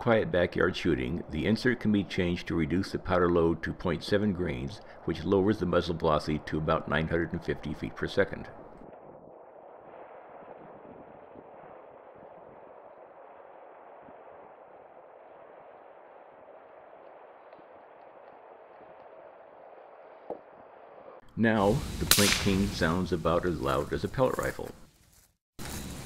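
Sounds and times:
faint background hiss: 21.4 - 24.8.

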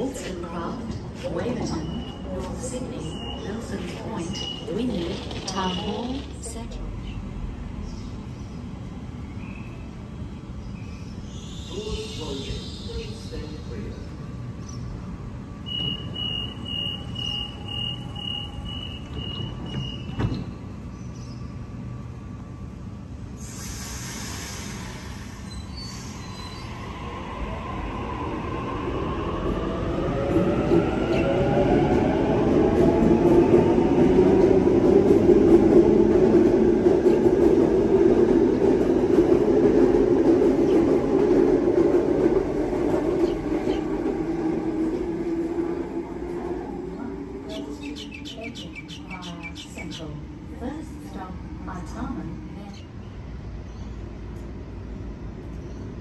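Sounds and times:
door warning beeping: 15.7 - 20.3
train doors shutting thud: 18.9 - 20.7.

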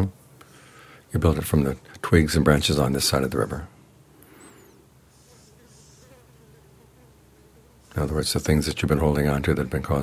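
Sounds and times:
flying insect buzzing: 4.2 - 9.1.

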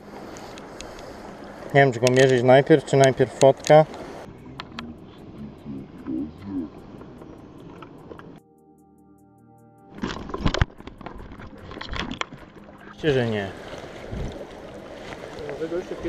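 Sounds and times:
river water moving: 0.0 - 8.4, 9.9 - 16.0.

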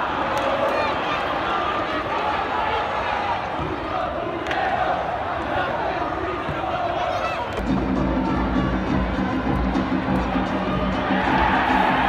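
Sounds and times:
crowd shouting and chanting: 0.0 - 12.0.

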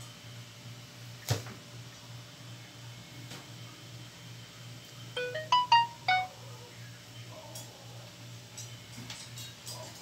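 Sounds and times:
electronic chime: 5.2 - 6.3.

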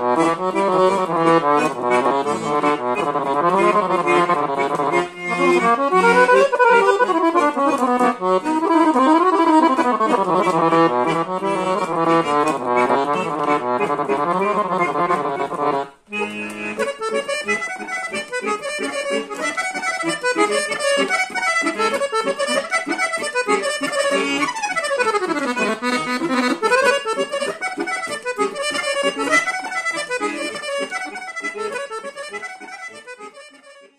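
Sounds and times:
button accordion melody: 0.0 - 33.9.

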